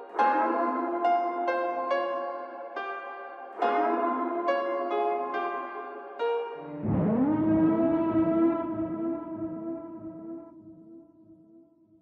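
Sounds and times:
low rumble: 6.8s - 11.0s
siren-like tone: 6.8s - 11.0s.

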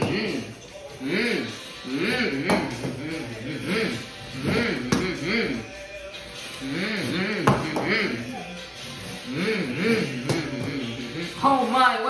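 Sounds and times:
boy humming: 1.0s - 5.7s, 6.6s - 8.6s, 9.2s - 11.4s.

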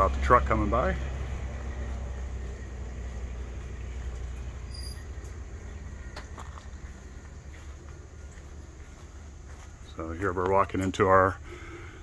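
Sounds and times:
truck engine rumble: 0.0s - 12.0s.

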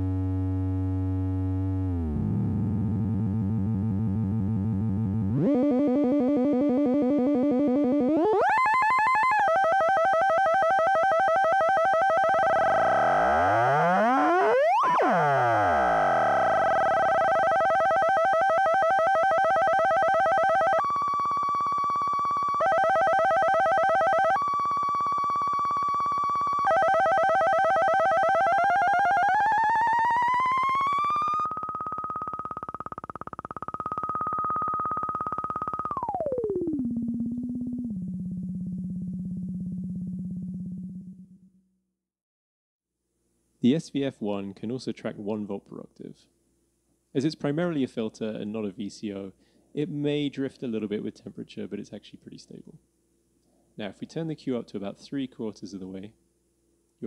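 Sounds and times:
buzzy synth tone: 0.0s - 41.5s.

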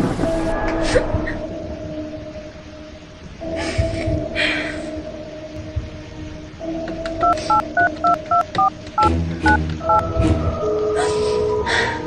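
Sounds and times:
soft background music: 0.0s - 12.0s
two-tone keypad beeps: 7.2s - 8.7s.

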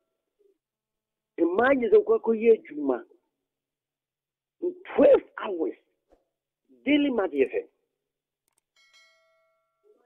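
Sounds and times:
faint bell-like chime: 8.7s - 10.0s.

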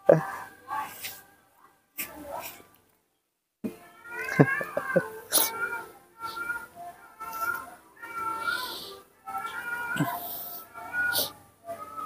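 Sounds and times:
baby monkey crying: 4.1s - 11.4s.

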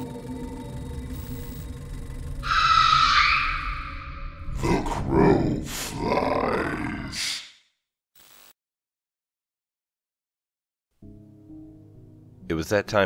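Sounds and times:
low dark music drone: 0.0s - 5.8s
harsh shriek: 2.4s - 4.5s.

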